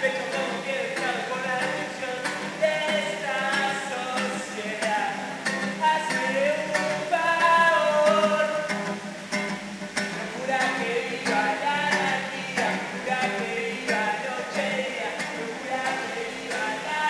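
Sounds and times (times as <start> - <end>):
man singing: 0.0 - 8.8, 10.0 - 17.0
strummed acoustic guitar: 0.0 - 17.0.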